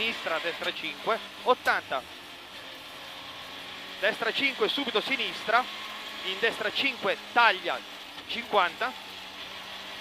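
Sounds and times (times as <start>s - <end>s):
car engine and road noise: 0.0s - 10.0s.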